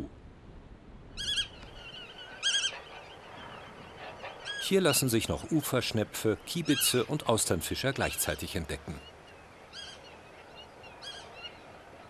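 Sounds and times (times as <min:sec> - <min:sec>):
wading bird calling: 0:01.2 - 0:05.4.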